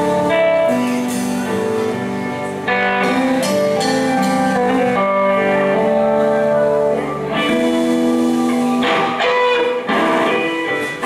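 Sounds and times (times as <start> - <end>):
drums: 0.0 - 11.0
electric guitars: 0.0 - 11.0.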